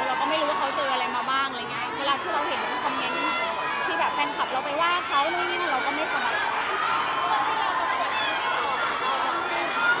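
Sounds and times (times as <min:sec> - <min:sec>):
woman speaking into microphones: 0:00.0 - 0:06.4
crowd chatter: 0:00.0 - 0:10.0.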